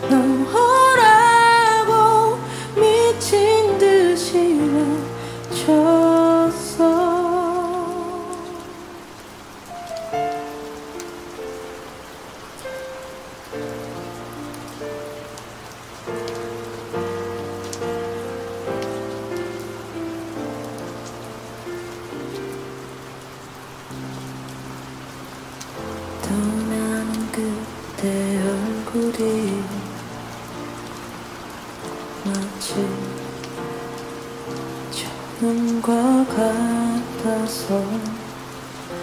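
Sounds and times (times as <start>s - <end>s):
woman singing: 0.0s - 9.1s, 26.2s - 30.2s, 32.2s - 33.4s, 34.9s - 38.4s
slow ballad with soft chords: 0.0s - 39.0s
steady rain: 0.0s - 39.0s.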